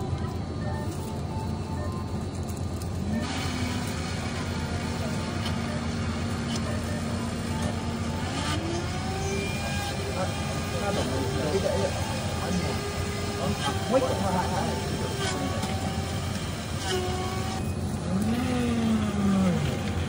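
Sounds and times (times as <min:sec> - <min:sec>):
blender motor humming: 0:03.0 - 0:20.0.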